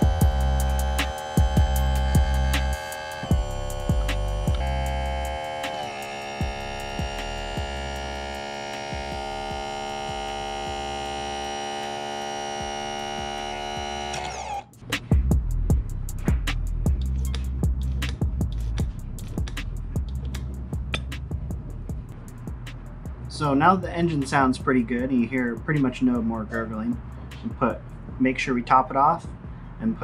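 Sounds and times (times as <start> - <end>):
electric pump humming: 0.0 - 15.2
background music with a beat: 0.0 - 29.9.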